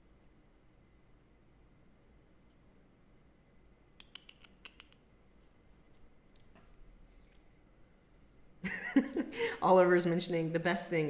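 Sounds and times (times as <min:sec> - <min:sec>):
computer keyboard typing: 0:04.0 - 0:05.0.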